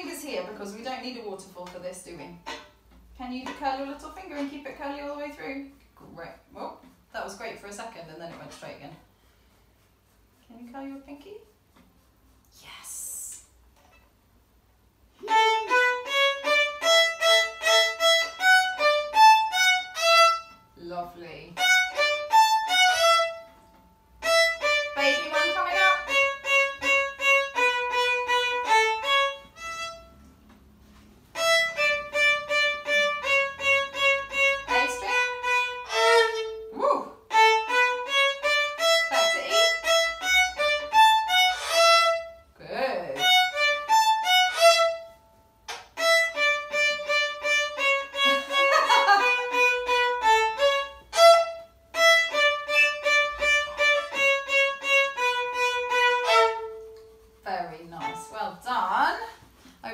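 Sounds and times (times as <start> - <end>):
two violins playing detached notes: 2.4 - 2.7, 15.2 - 20.6, 21.6 - 23.5, 24.2 - 30.2, 31.3 - 36.7, 37.3 - 42.4, 43.2 - 45.1, 46.0 - 57.0.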